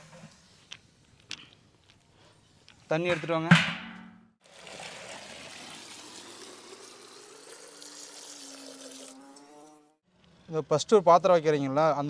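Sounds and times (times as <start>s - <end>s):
water pouring into metal pot: 4.4s - 9.8s.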